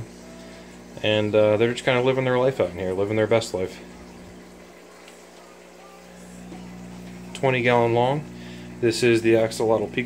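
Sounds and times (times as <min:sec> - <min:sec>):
aquarium pump humming: 0:00.0 - 0:10.0.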